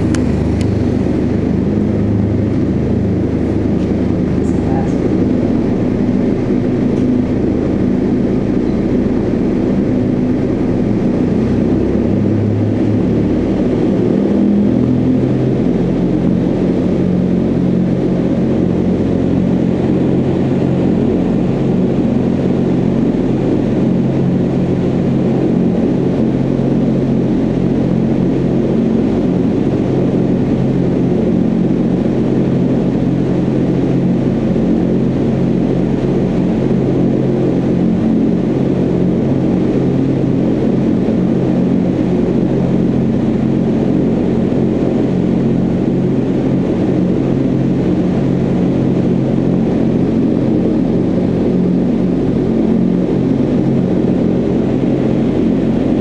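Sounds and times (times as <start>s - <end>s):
loud rush of air: 0.0s - 16.5s
low fan hum: 0.0s - 56.0s.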